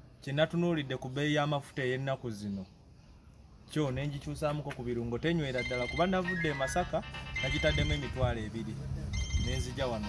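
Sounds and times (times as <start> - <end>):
man talking: 3.7 - 10.0
bright electronic melody: 5.5 - 10.0.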